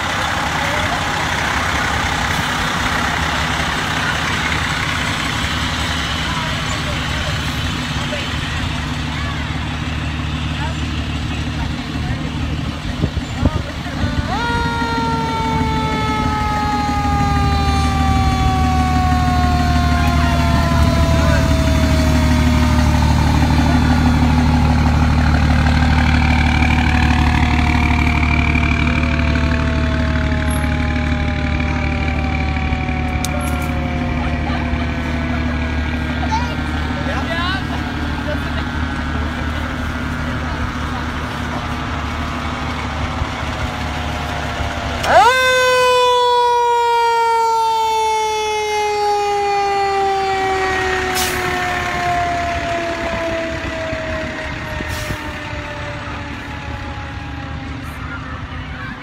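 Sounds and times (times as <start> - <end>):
truck engine humming: 0.0 - 59.0
fire engine siren winding: 14.0 - 25.0, 25.7 - 35.3, 44.2 - 58.0.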